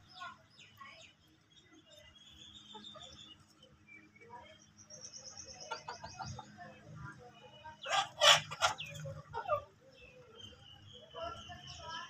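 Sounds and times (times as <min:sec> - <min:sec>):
chickens calling: 0:01.9 - 0:03.9, 0:04.9 - 0:12.0.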